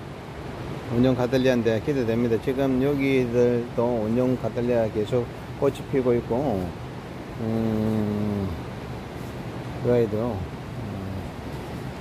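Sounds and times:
man humming low: 7.4 - 8.8, 10.3 - 12.0.

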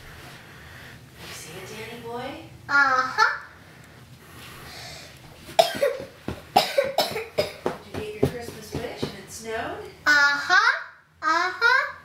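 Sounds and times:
person coughing: 5.6 - 7.7.

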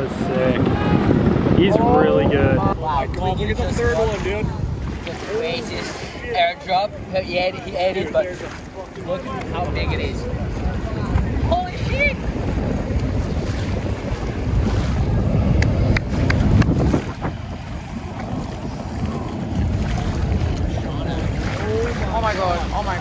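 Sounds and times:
choppy ocean water: 0.0 - 23.0
wind buffeting microphone: 0.0 - 23.0.

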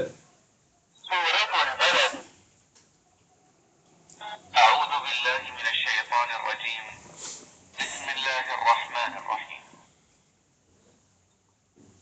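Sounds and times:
person's voice through a speaker: 1.0 - 2.4, 4.2 - 7.2, 7.8 - 9.9.

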